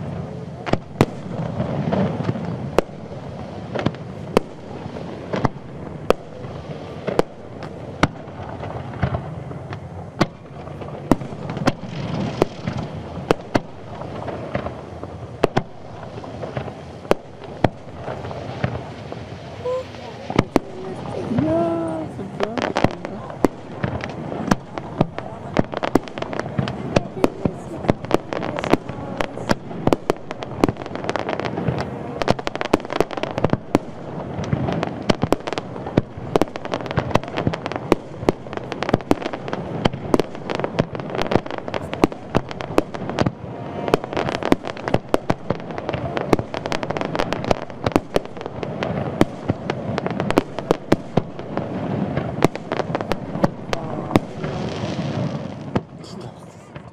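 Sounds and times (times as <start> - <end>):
fireworks bangs and crackles: 0.0 - 56.9.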